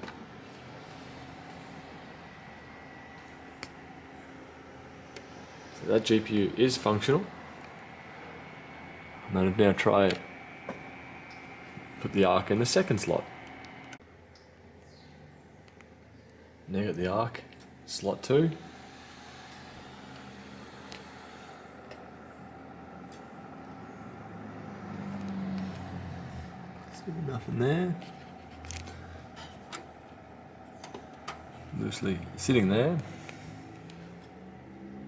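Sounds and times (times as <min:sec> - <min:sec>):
computer fans whirring: 0:00.0 - 0:35.0
faint low hum: 0:00.0 - 0:35.0.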